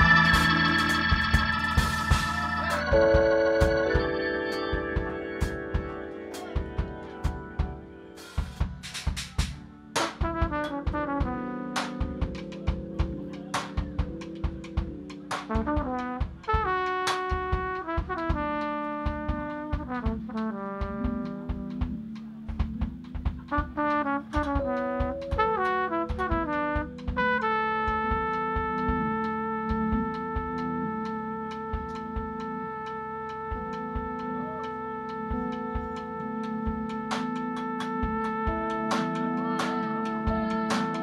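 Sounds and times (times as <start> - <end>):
bass line: 0.0 - 4.1
trumpet playing: 0.0 - 8.3, 10.0 - 14.4, 15.0 - 22.1, 23.5 - 41.0
drums: 0.0 - 41.0.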